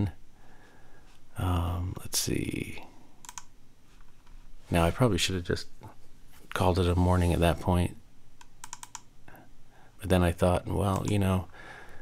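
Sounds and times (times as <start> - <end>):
computer mouse clicks: 3.2 - 3.5, 8.4 - 9.1, 10.9 - 11.3.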